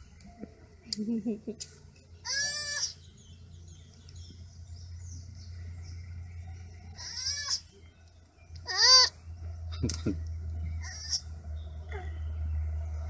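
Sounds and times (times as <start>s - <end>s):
baby sloth crying: 2.2s - 3.0s, 6.9s - 7.7s, 8.7s - 9.2s, 10.8s - 11.3s.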